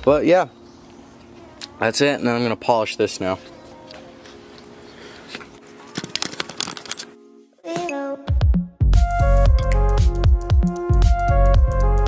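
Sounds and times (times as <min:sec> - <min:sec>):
rustling handling noise: 0:03.2 - 0:07.2.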